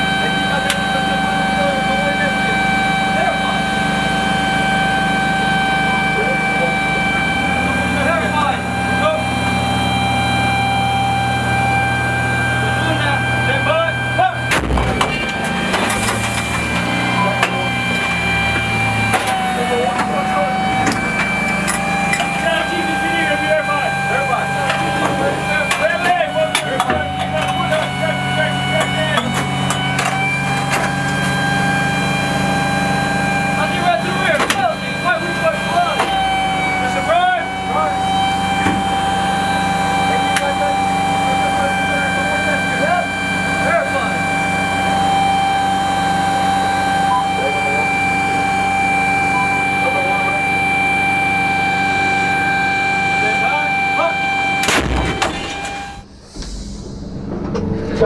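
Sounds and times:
machinery hum with high whine: 0:00.0 - 0:58.0.

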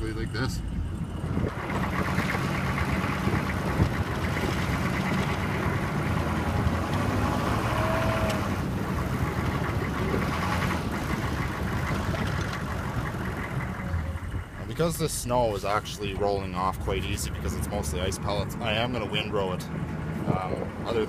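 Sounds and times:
truck engine running: 0:00.0 - 0:21.0
plow blade pushing snow: 0:00.6 - 0:21.0.

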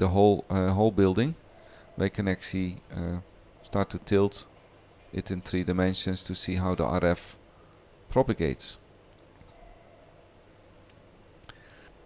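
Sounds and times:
computer mouse click: 0:09.4 - 0:09.6, 0:10.8 - 0:11.1.

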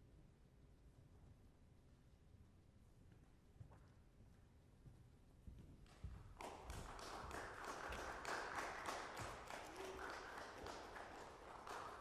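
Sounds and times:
light applause: 0:06.3 - 0:12.0.

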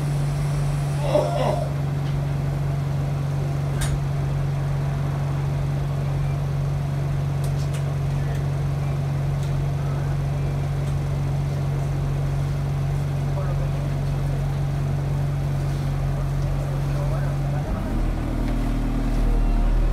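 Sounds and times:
bus engine humming: 0:00.0 - 0:19.9.

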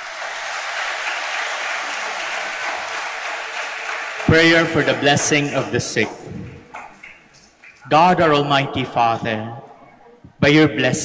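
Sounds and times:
congregation applauding: 0:00.0 - 0:07.9.

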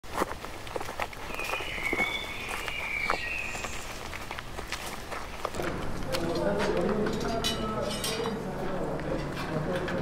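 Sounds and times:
footsteps on leafy dirt path: 0:00.0 - 0:07.4.

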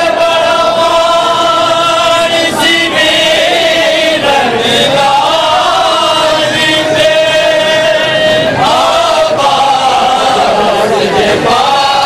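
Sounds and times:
male voices chanting a lament: 0:00.0 - 0:12.0.

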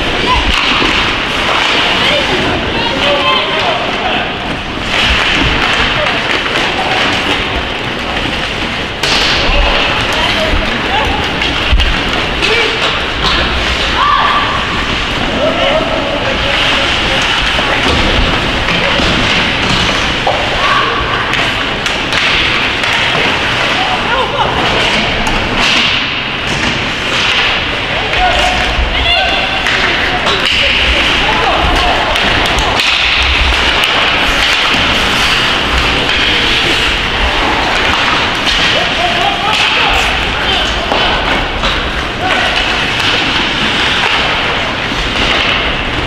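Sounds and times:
knocks against rink boards: 0:16.3 - 0:20.7, 0:21.3 - 0:23.8, 0:24.6 - 0:46.0.

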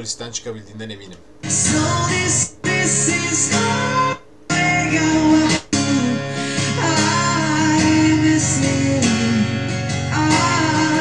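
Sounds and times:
man singing: 0:01.4 - 0:11.0
strummed acoustic guitar: 0:01.4 - 0:11.0.

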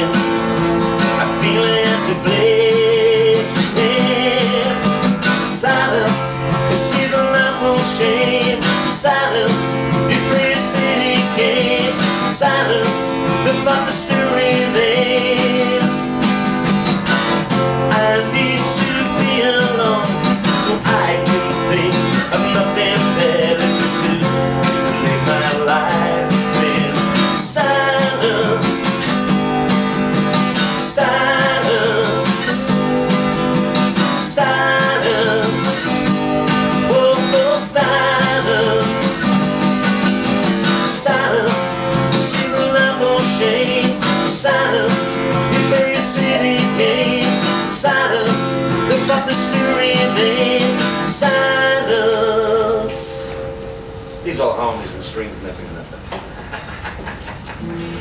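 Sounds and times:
man singing: 0:00.0 - 0:00.4, 0:01.0 - 0:16.3, 0:17.4 - 0:29.7, 0:30.4 - 0:33.2, 0:33.8 - 0:53.6
strummed acoustic guitar: 0:00.0 - 0:58.0.

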